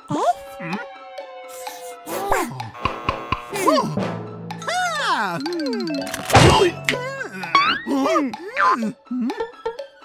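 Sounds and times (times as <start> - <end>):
background music: 0.0 - 10.0
cartoon character mumbling: 4.6 - 9.4
cartoon thump: 6.2 - 6.8.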